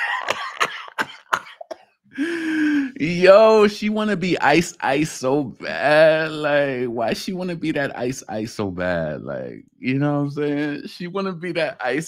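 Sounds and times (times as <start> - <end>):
man coughing: 0.0 - 2.9
man speaking: 2.2 - 12.0.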